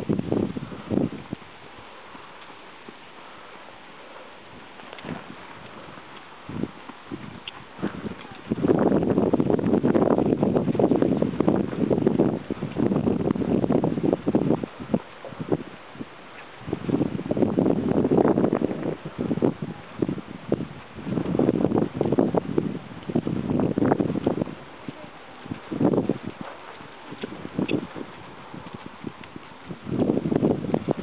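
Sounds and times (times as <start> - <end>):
horse hoofbeats on sand: 0.0 - 31.0
wind buffeting microphone: 0.0 - 31.0.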